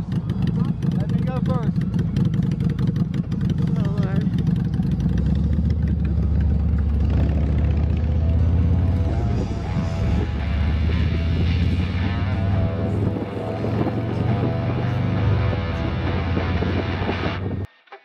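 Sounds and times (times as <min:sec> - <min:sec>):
low engine drone: 0:00.0 - 0:17.7
motorcycle engine running: 0:00.0 - 0:17.7
music: 0:05.4 - 0:18.0.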